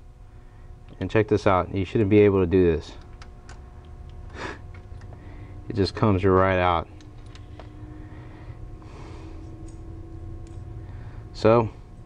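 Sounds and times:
steady low hum: 0:00.0 - 0:12.0
light clicks of metal parts: 0:06.3 - 0:07.8, 0:09.4 - 0:10.7.

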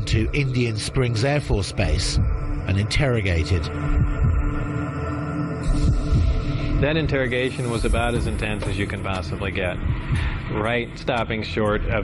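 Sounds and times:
man speaking: 0:00.0 - 0:03.7, 0:06.8 - 0:09.8, 0:10.5 - 0:12.0
sustained ominous drone: 0:00.0 - 0:11.1
low heartbeat-like thumps: 0:01.4 - 0:04.9, 0:05.6 - 0:11.1.

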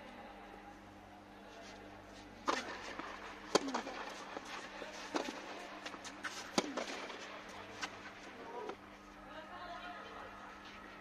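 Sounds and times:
steady low hum: 0:00.0 - 0:11.0
racket hitting tennis ball: 0:02.4 - 0:08.2.

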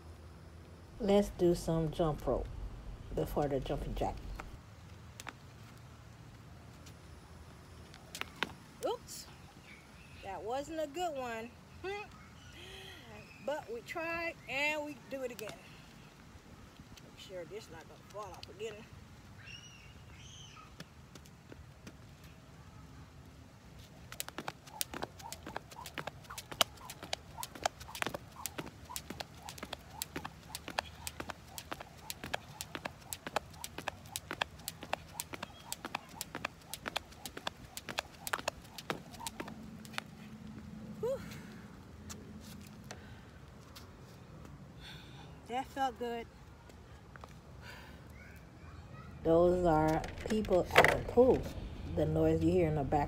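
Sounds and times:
jump rope slapping pavers: 0:24.0 - 0:40.2.

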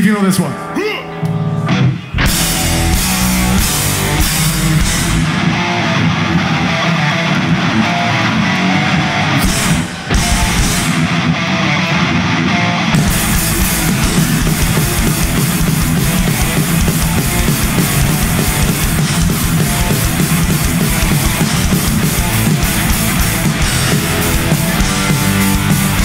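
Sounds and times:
distorted guitar riff: 0:00.0 - 0:26.0
rock band playing heavy metal: 0:00.0 - 0:26.0.

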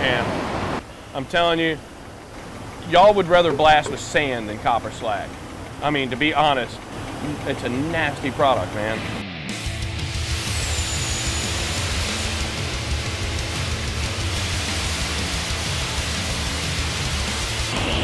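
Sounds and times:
background music: 0:08.8 - 0:18.0
abrasive blasting nozzle hissing: 0:10.0 - 0:18.0.

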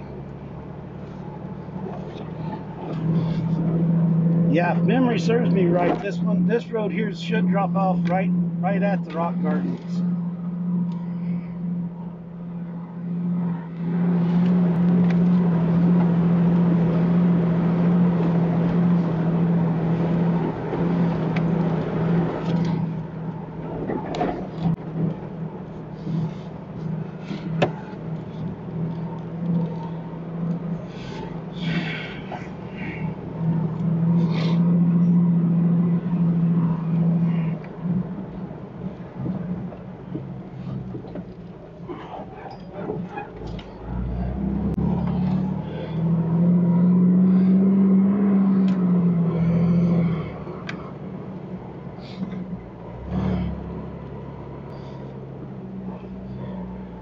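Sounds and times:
body and suspension rattles: 0:00.0 - 0:49.1
car engine drone: 0:00.0 - 0:57.0
tyre and road noise: 0:00.0 - 0:57.0.

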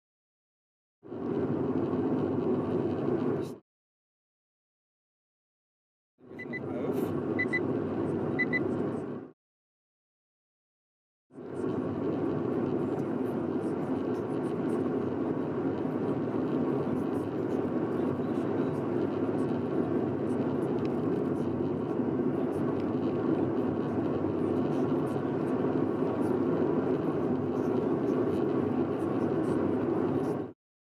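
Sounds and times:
car engine and tyre drone: 0:01.1 - 0:03.6, 0:06.3 - 0:09.3, 0:11.3 - 0:30.5.

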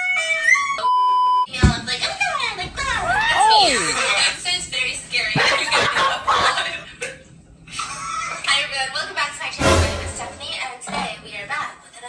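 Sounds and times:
music: 0:09.6 - 0:10.5.

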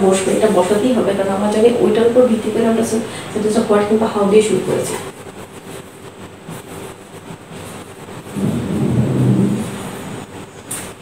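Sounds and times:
low rumble: 0:08.3 - 0:10.3.

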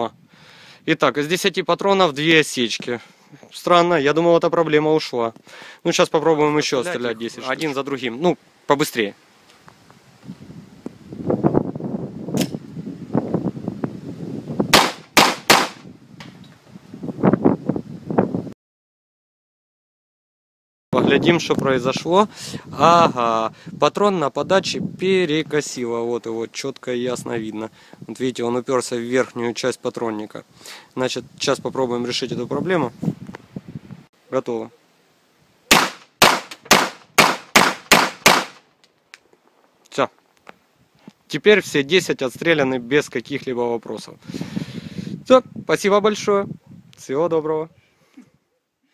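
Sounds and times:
gas pistol shots: 0:14.7 - 0:15.9, 0:35.7 - 0:38.6.

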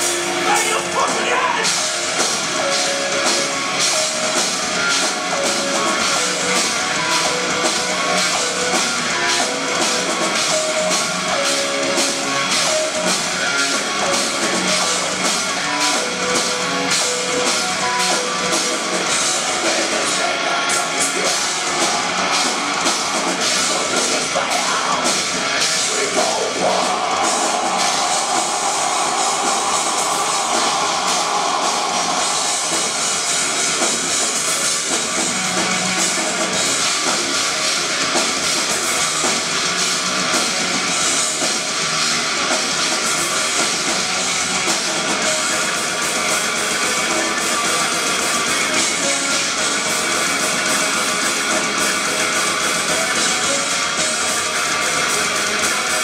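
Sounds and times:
metal band playing live: 0:00.0 - 0:56.0.

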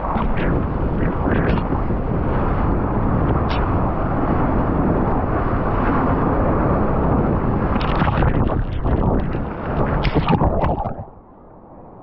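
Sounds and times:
wind buffeting camera: 0:00.0 - 0:11.2
rushing water: 0:07.5 - 0:11.2.

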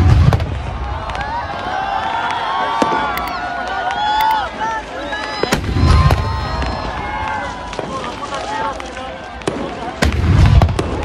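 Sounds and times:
deep firework boom: 0:00.0 - 0:01.8, 0:05.4 - 0:08.0, 0:09.4 - 0:11.0
fireworks crackling pops: 0:00.0 - 0:11.0.

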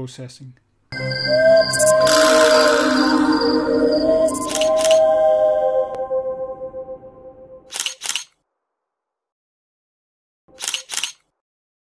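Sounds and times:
soft background music: 0:01.0 - 0:07.7
camera shutter clicks: 0:07.7 - 0:08.3, 0:10.6 - 0:11.2.

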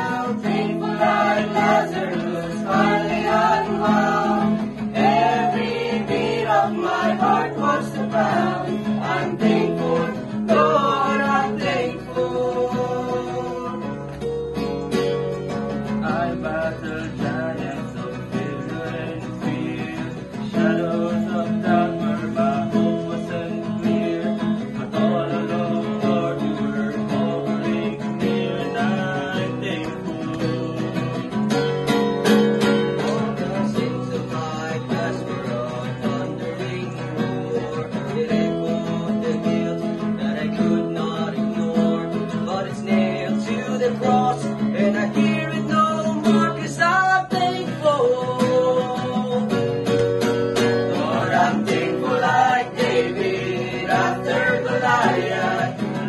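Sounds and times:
group of voices singing: 0:00.0 - 0:14.2, 0:15.8 - 0:31.4, 0:32.6 - 0:49.8, 0:50.6 - 0:56.0
acoustic guitar strumming: 0:00.0 - 0:56.0.

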